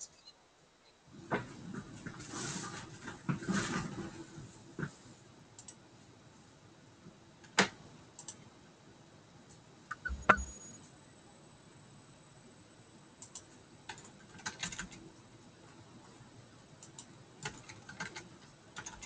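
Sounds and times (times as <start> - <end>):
sharp clicks: 13.2 - 15.0.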